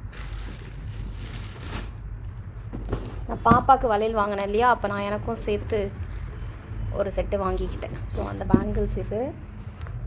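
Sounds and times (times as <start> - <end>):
packaging rustling: 0.0 - 3.3.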